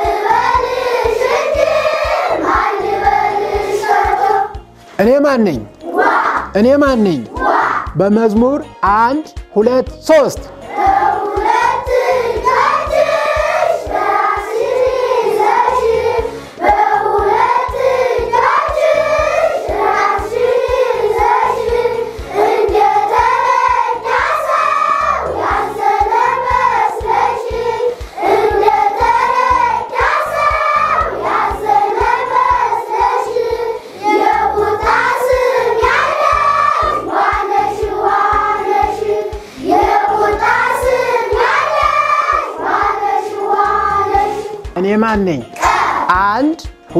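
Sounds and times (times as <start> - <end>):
children singing in unison: 0.0 - 4.7, 5.8 - 6.6, 7.2 - 8.0, 10.6 - 44.8, 45.5 - 46.1.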